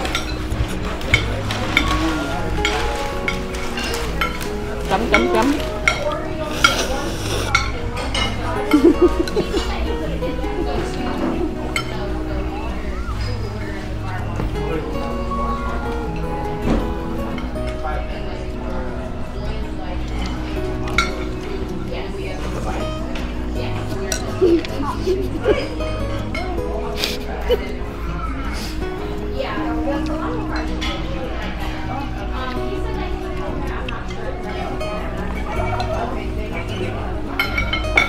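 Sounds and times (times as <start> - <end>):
background music: 0.0 - 38.0
voices: 0.0 - 38.0
spoon and chopsticks clinking bowl: 24.0 - 24.5.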